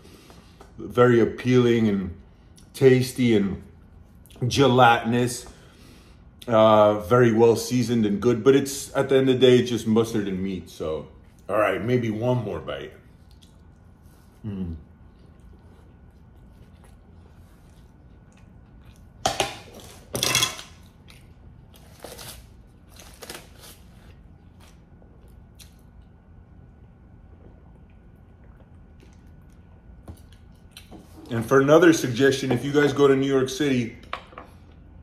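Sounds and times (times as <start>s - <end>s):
chewing food: 13.0s - 20.1s, 20.7s - 21.9s, 24.0s - 31.2s.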